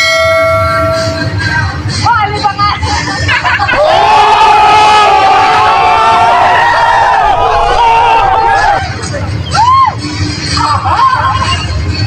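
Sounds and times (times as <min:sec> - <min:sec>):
steady held tone: 0:00.0 - 0:01.5
young men shouting and whooping: 0:03.7 - 0:10.9.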